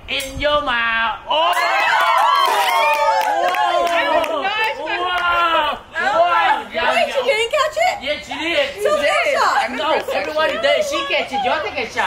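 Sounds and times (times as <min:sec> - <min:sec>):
voices exclaiming and shouting: 0:00.2 - 0:12.0.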